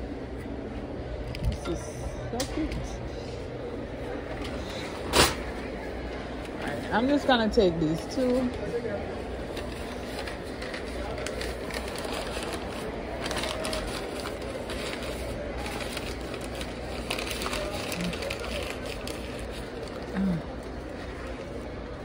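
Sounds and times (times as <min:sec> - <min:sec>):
faint voices: 0:00.0 - 0:22.0
steady background hum: 0:00.0 - 0:22.0
paper rustling and crinkling: 0:09.4 - 0:20.2.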